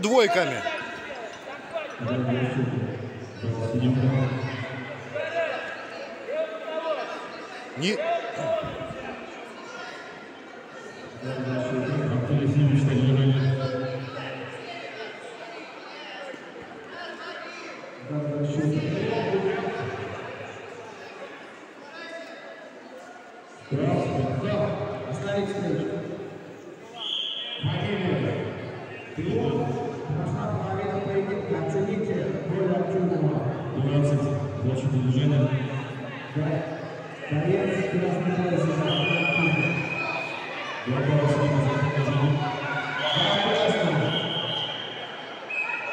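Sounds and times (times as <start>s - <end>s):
man's low voice echoing: 0.0s - 0.6s
voices in sports hall: 0.0s - 45.9s.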